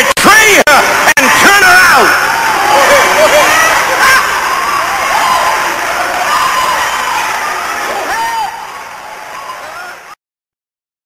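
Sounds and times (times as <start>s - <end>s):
congregation cheering and shouting: 0.0s - 10.2s
dense crowd noise: 0.0s - 10.2s.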